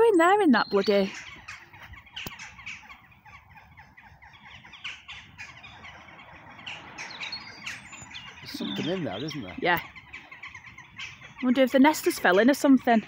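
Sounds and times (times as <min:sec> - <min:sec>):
flock of birds calling: 0:00.0 - 0:13.0.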